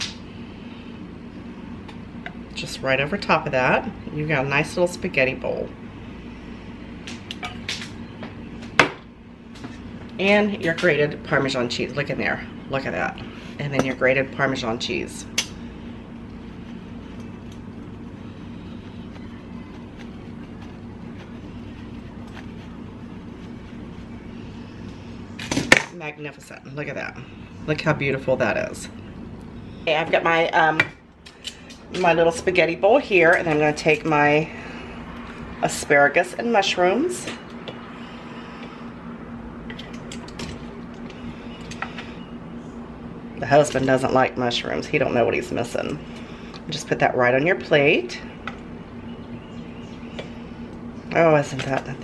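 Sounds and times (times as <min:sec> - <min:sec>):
low room hum: 0:00.0 - 0:52.0.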